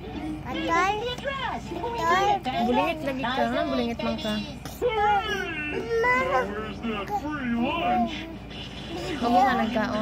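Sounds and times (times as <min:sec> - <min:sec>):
girl talking: 0:00.5 - 0:03.0.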